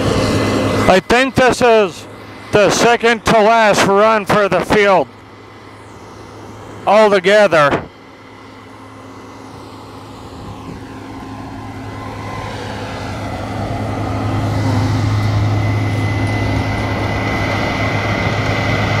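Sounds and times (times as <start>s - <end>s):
combine harvester running: 0.0s - 19.0s
thin high whine: 0.0s - 19.0s
tractor diesel engine: 0.0s - 19.0s.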